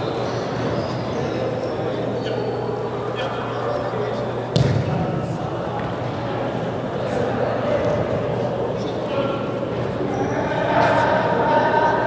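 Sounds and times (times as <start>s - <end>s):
players' voices: 0.0s - 12.0s
ball kick thud echoing: 4.5s - 6.0s.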